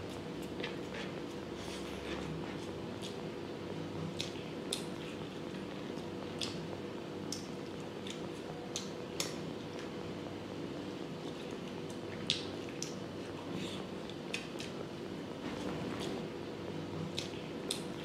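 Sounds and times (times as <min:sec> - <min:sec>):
low background hum: 0:00.0 - 0:18.0.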